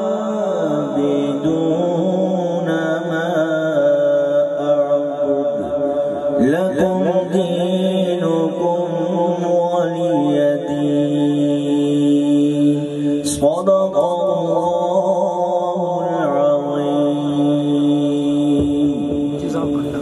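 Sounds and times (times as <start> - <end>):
man reciting melodically over loudspeakers: 0.0 - 20.0.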